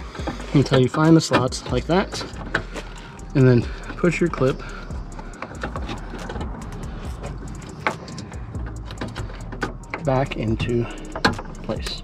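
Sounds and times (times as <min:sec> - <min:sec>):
steady low hum: 0:00.0 - 0:12.0
plastic clicks and rustling: 0:00.2 - 0:03.1.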